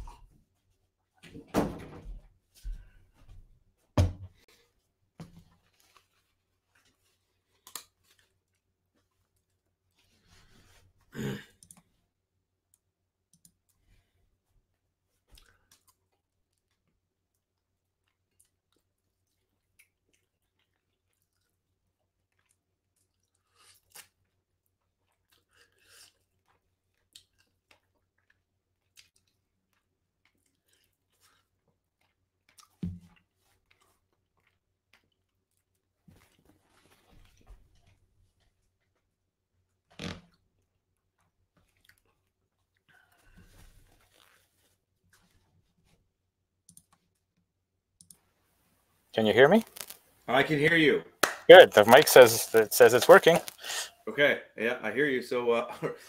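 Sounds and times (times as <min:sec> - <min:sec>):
dull thump: 0:04.0 - 0:04.4.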